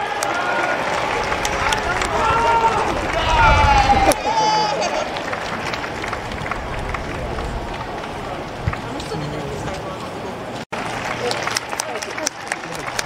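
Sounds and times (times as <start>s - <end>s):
football supporters shouting: 0.0s - 8.9s
crowd chatter: 0.0s - 13.0s.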